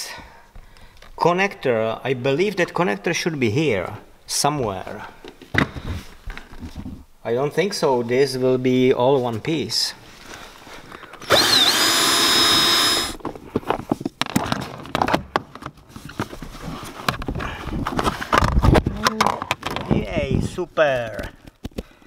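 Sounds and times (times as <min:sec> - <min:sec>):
power drill whine: 0:11.2 - 0:13.2.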